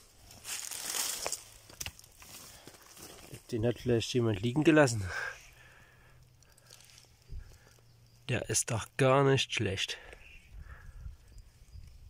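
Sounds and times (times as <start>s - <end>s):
dry leaves rustling: 0.0s - 7.8s.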